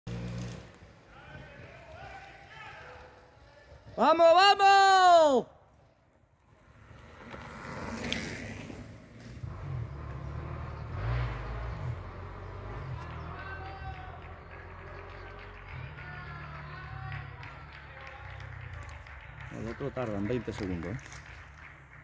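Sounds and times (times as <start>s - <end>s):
bike tyres rolling on dirt: 0.1s - 4.0s, 6.0s - 22.0s.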